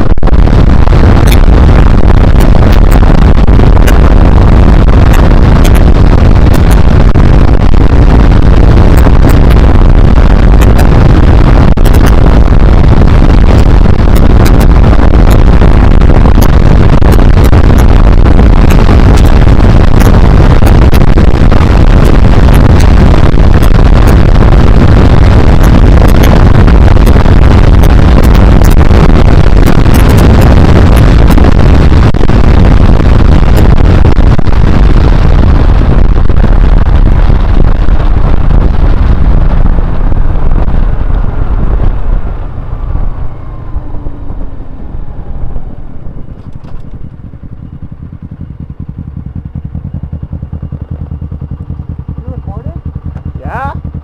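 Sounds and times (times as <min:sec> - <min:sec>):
motorcycle engine: 0:00.0 - 0:54.0
wind rush on microphone: 0:00.0 - 0:54.0.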